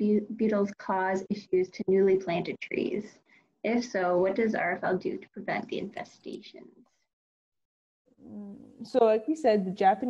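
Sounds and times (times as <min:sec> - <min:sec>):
woman speaking: 0:00.0 - 0:06.6.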